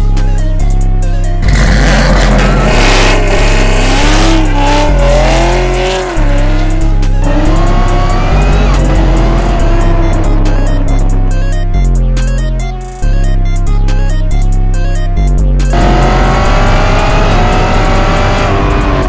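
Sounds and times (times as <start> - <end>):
electronic music with heavy bass: 0.0 - 19.0
car engine revving: 1.2 - 12.4, 15.6 - 19.0.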